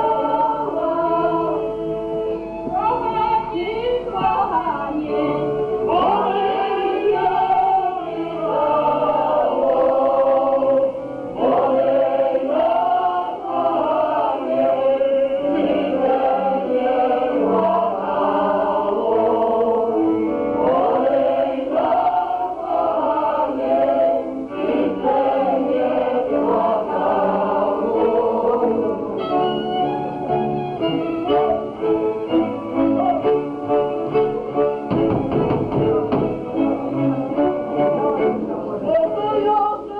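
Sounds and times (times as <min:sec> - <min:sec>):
group of voices singing folk song: 0:00.0 - 0:39.9
folk band dance rhythm: 0:24.8 - 0:38.8.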